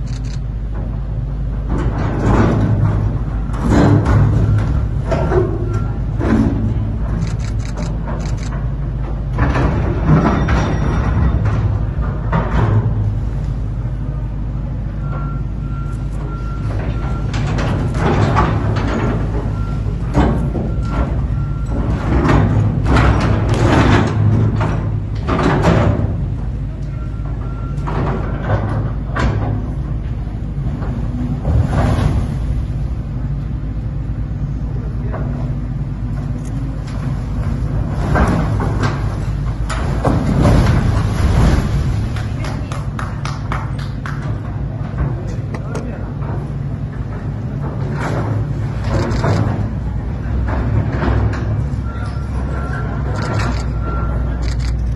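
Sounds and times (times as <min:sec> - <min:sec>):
excavator engine drone: 0:00.0 - 0:54.9
machine warning beep: 0:15.0 - 0:17.4, 0:26.9 - 0:27.9, 0:51.8 - 0:54.7.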